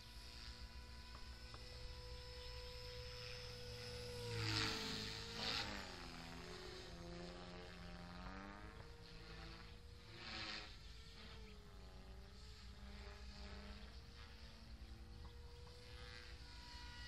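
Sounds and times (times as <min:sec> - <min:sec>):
model helicopter whine: 0:00.0 - 0:17.0.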